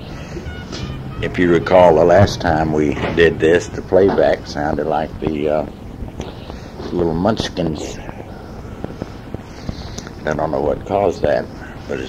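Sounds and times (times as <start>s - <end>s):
low hum: 0.0s - 6.8s
tape hiss: 0.0s - 12.0s
faint clicks: 8.0s - 10.3s.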